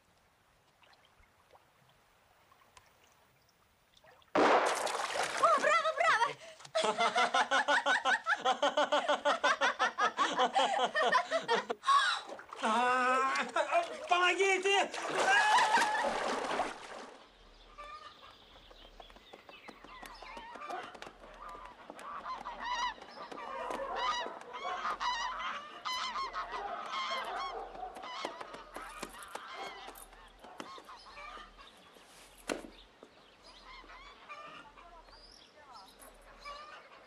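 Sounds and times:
geese honking: 0:20.6 - 0:29.8.

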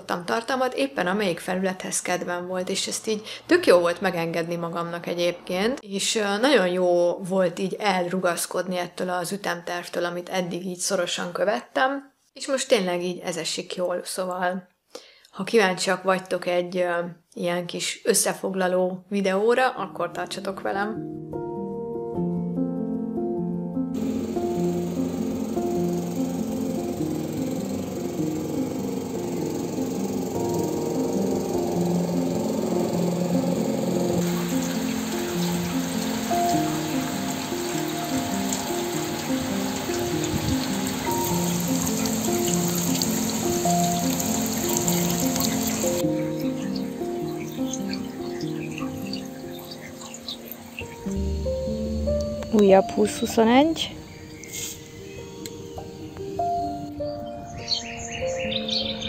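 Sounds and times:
plucked melody music: 0:21.0 - 0:53.9
heavy rain hiss: 0:24.0 - 0:52.4.

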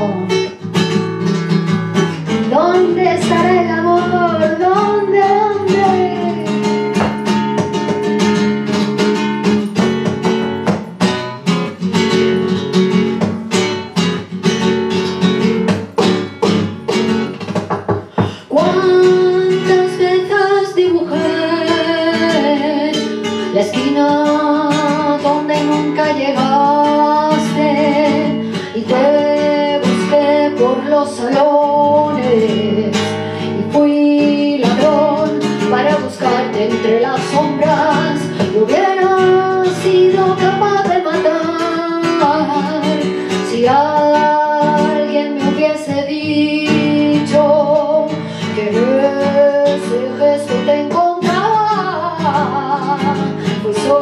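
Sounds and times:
woman singing: 0:00.0 - 0:14.0, 0:15.0 - 0:54.0
flamenco guitar strumming: 0:00.0 - 0:54.0.

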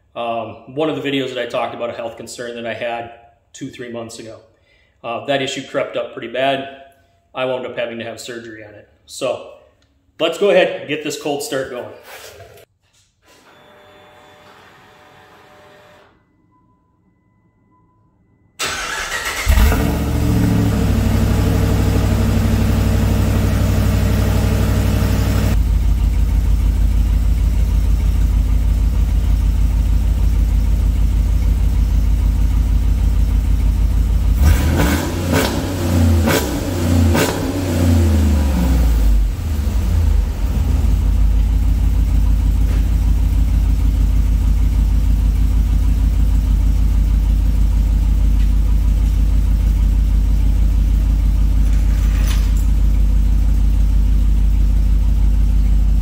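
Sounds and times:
car engine idling and revving: 0:18.7 - 0:56.0.

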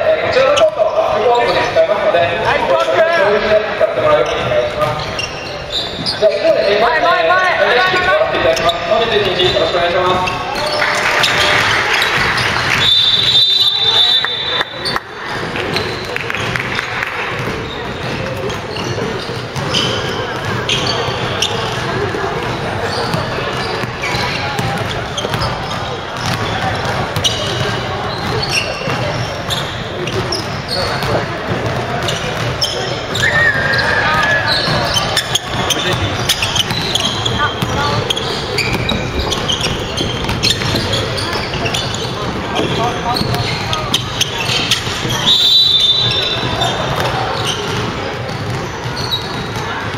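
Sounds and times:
players shouting and chatting: 0:00.0 - 0:49.9
sneakers squeaking: 0:00.0 - 0:49.9
basketball bouncing on hardwood floor: 0:17.3 - 0:32.6, 0:34.7 - 0:45.2, 0:46.1 - 0:49.9.

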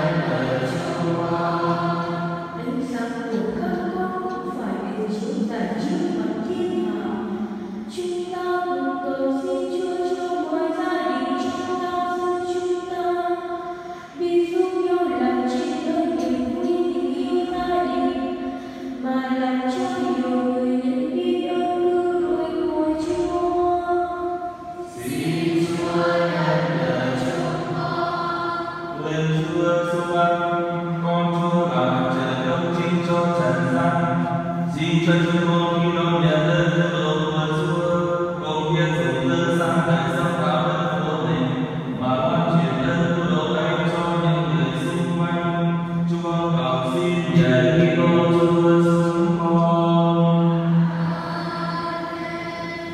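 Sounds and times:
single voice chanting: 0:00.0 - 0:02.7, 0:24.9 - 0:45.2
congregation chanting: 0:00.0 - 0:21.6, 0:22.2 - 0:52.9.

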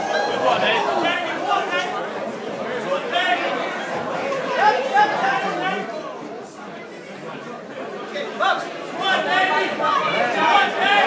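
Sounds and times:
loud shouts: 0:00.0 - 0:02.1, 0:02.9 - 0:05.9, 0:08.4 - 0:11.0
crowd talking and calling out: 0:00.0 - 0:11.0.

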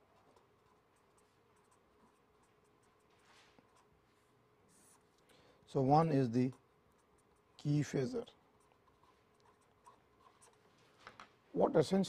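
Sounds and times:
marker pen writing on paper: 0:00.0 - 0:05.2, 0:05.8 - 0:11.3.

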